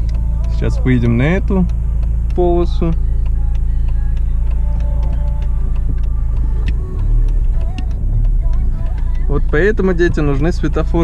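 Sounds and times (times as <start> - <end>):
engine and road rumble: 0.0 - 11.0.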